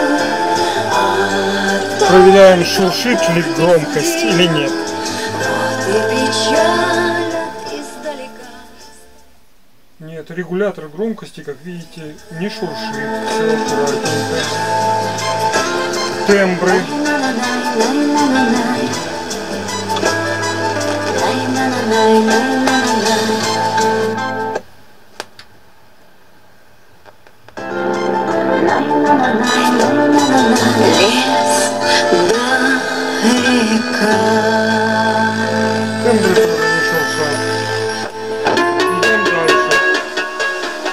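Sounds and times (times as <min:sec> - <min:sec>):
music with singing from a radio: 0:00.0 - 0:09.4, 0:11.0 - 0:24.6, 0:27.6 - 0:40.9.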